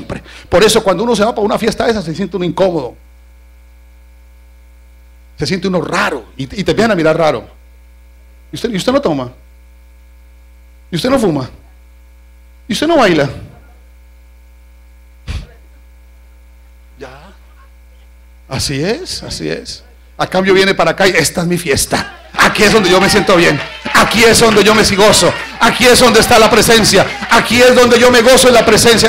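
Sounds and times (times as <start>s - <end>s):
electrical mains hum: 0.0s - 29.0s.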